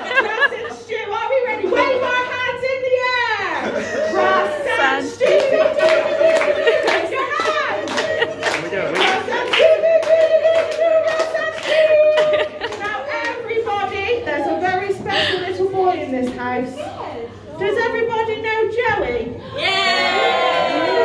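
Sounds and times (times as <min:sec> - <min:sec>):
crowd clapping in rhythm: 0:05.2 - 0:13.4.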